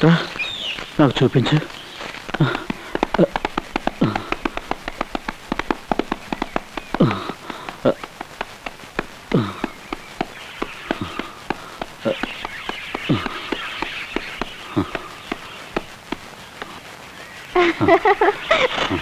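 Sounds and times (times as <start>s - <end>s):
rapid irregular hoofbeat clicking: 0.0s - 17.4s.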